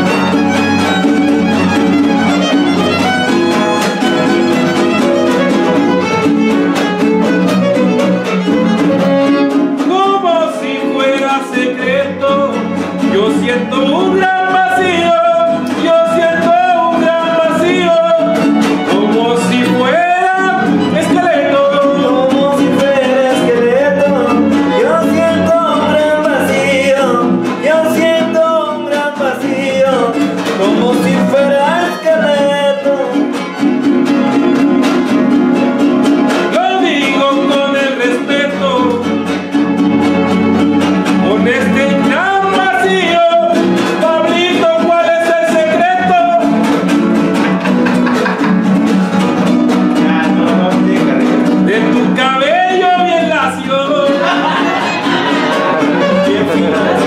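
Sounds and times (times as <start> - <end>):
violin: 0.0 - 14.8, 15.4 - 27.7, 30.1 - 44.2, 53.0 - 57.0
person singing: 0.0 - 33.6, 36.3 - 39.4, 41.0 - 57.0
strummed guitars: 0.0 - 57.0.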